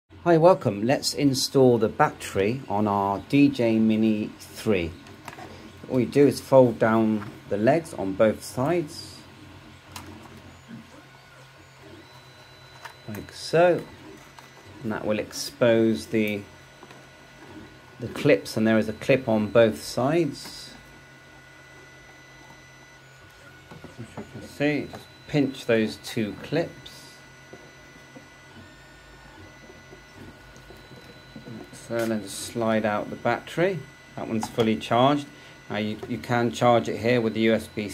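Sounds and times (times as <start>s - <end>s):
low electrical hum: 0.1s - 37.9s
faint high whine: 0.2s - 37.9s.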